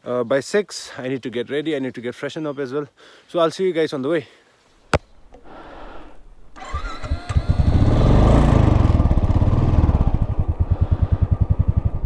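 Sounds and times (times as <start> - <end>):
motorcycle starter whir: 6.5 - 10.6
motorcycle engine idling: 6.6 - 12.0.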